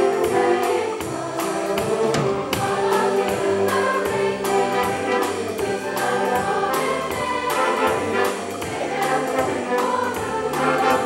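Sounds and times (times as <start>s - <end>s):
band playing brass chords: 0.0s - 11.0s.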